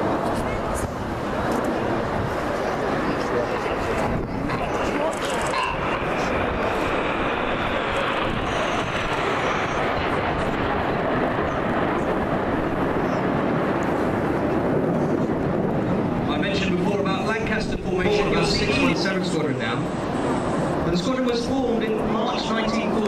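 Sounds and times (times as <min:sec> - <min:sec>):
jets flying past: 0:00.0 - 0:23.0.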